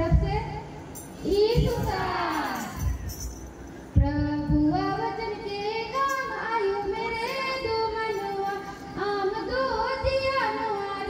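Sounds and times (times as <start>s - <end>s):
woman and children singing: 4.0s - 11.0s.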